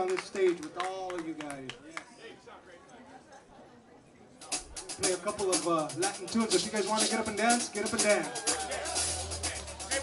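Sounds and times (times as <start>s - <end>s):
faint crowd murmur: 0.0s - 10.0s
maracas shaking: 4.5s - 10.0s.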